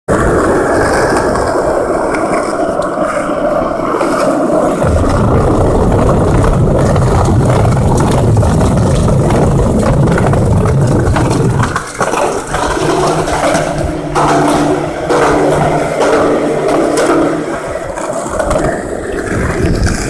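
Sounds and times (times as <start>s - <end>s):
skateboard wheels rolling on concrete: 0.1s - 20.0s.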